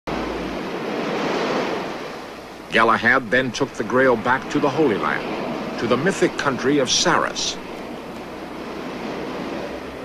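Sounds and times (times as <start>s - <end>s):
low hum: 0.0s - 10.0s
steady rushing noise: 0.0s - 10.0s.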